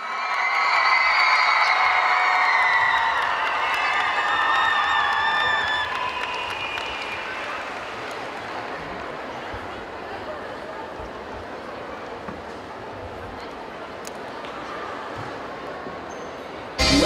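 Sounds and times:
crowd cheering and screaming: 0.0 - 8.1, 16.8 - 17.0
scattered clapping: 2.8 - 9.1.

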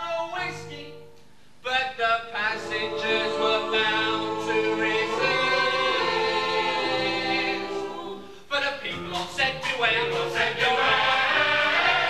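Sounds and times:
choir singing a show tune: 2.3 - 8.3, 9.6 - 12.0.

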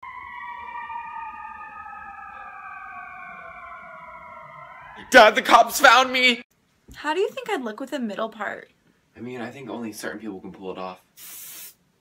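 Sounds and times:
ambulance siren: 0.0 - 6.4.

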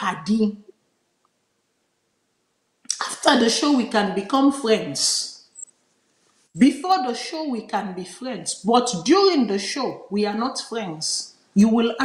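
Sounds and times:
woman speaking: 0.0 - 0.8, 2.9 - 5.4, 6.6 - 12.0.

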